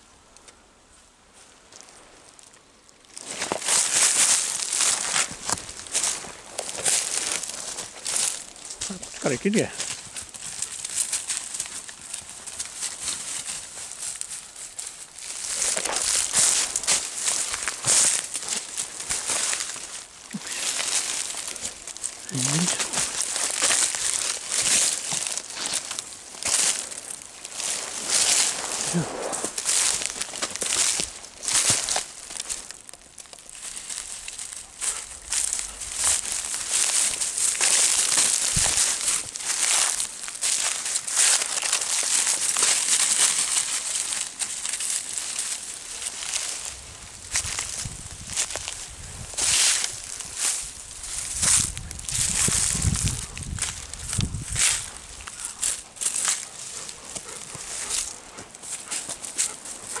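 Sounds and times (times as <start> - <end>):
dry leaves rustling and crunching: 1.7 - 60.0.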